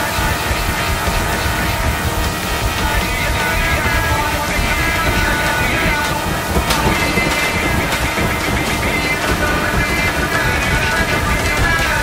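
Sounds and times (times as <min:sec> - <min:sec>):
dense noisy music: 0:00.0 - 0:12.0.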